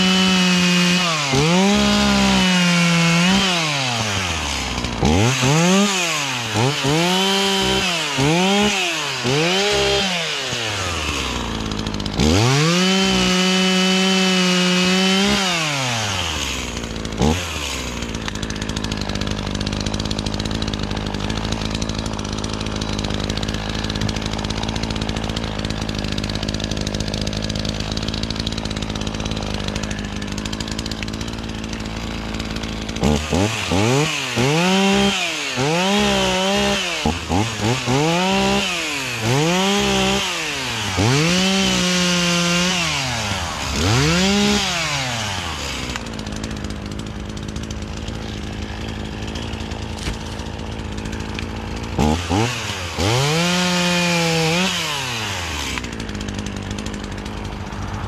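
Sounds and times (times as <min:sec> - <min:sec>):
chainsaw idling and revving: 0:00.0 - 0:58.0.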